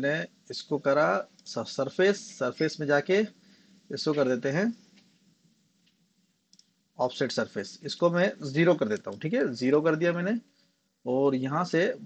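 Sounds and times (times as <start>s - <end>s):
faint computer mouse clicks: 5.8s - 6.8s.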